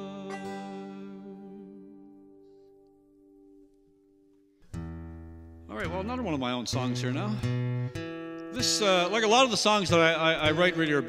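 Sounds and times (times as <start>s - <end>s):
acoustic guitar chord strummed: 0.0s - 11.0s
man speaking: 5.7s - 7.5s, 8.6s - 11.0s.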